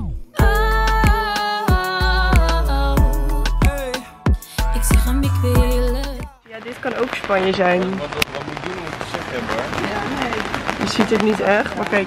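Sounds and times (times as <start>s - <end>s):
rain patter: 6.4s - 12.0s
thunder rumbling: 6.6s - 12.0s.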